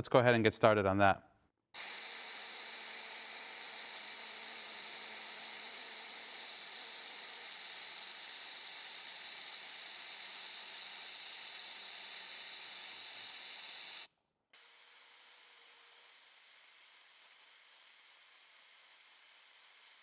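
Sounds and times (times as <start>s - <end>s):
compressed air hissing: 1.8s - 15.4s.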